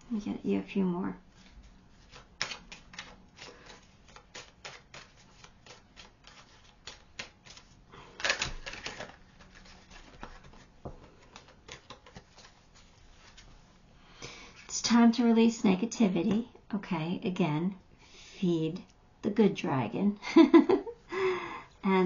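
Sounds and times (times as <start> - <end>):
cards being shuffled: 1.3 - 13.5.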